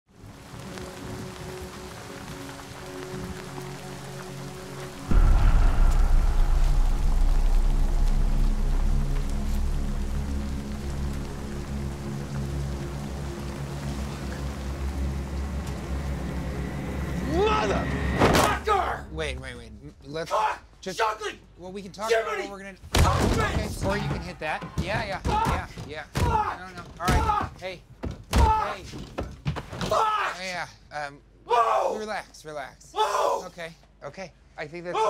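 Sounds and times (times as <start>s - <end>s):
heavy rain falling: 0.1s - 19.8s, 23.0s - 27.4s
film score sustained notes: 0.2s - 20.2s
deep bass hit: 5.1s - 12.0s.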